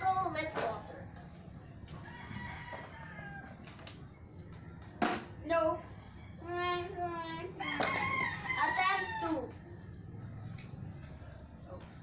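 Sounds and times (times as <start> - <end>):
rooster crowing: 2.0 - 3.6, 7.6 - 9.5.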